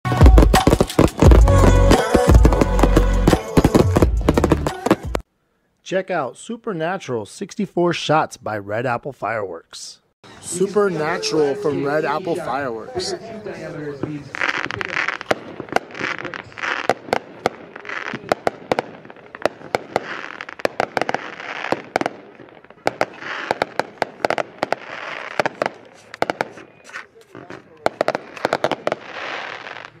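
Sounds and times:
firework cracks and pops: 0:00.3 - 0:05.3, 0:14.0 - 0:30.0
firework hissing crackle: 0:00.3 - 0:05.3, 0:14.3 - 0:27.2, 0:28.0 - 0:30.0.

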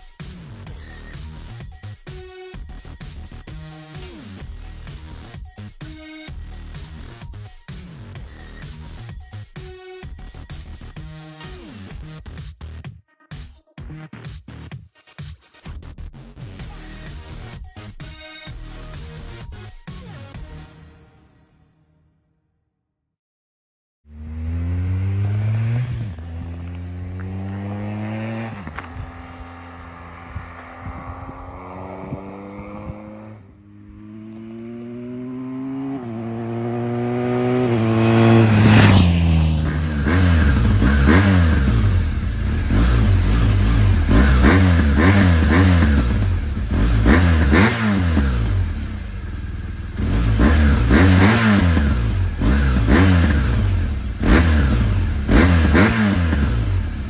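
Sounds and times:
motorcycle engine accelerating: 0:24.1 - 0:57.0
motorcycle engine revving from idle: 0:24.1 - 0:57.0.

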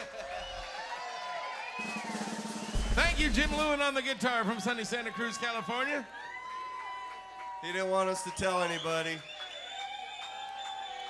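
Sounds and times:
drum kit: 0:01.7 - 0:04.1.

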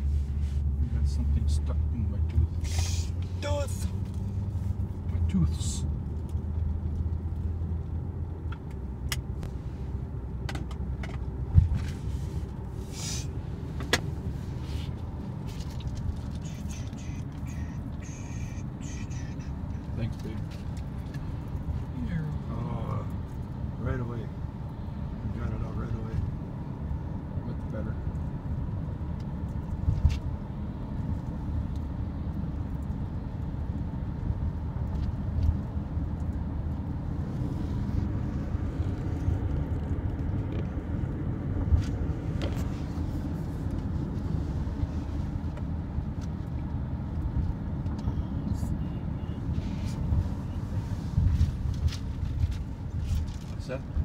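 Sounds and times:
car driving rumble: 0:00.0 - 0:54.0.

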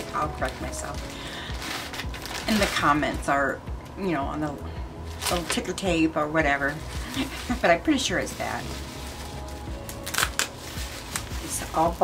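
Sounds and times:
bubble wrap crinkling: 0:00.0 - 0:03.2, 0:05.0 - 0:12.0.

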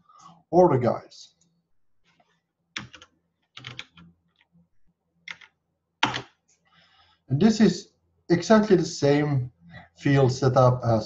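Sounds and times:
keyboard typing: 0:02.8 - 0:04.1, 0:05.3 - 0:06.4.

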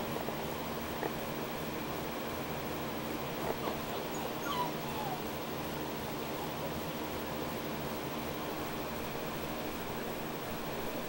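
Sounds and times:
box fan hissing: 0:00.0 - 0:11.0
puppy whimpering: 0:03.4 - 0:06.7.

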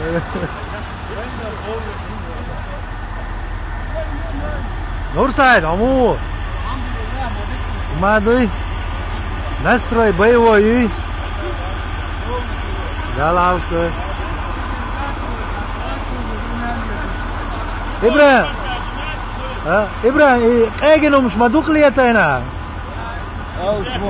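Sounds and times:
truck engine idling: 0:00.0 - 0:24.0
men calling out: 0:09.2 - 0:24.0.

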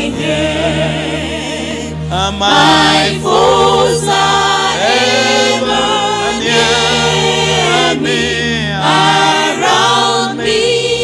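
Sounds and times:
electronic keyboard chords: 0:00.0 - 0:11.0
voices singing a hymn: 0:00.0 - 0:11.0.

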